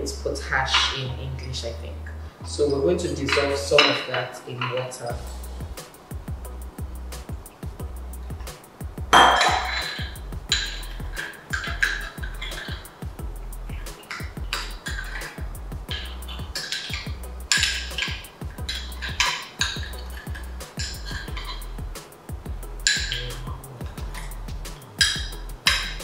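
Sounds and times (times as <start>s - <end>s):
background music with bass: 0.0s - 4.0s, 5.1s - 26.0s
water pouring and splashing: 9.2s - 13.0s, 13.8s - 21.8s, 22.8s - 26.0s.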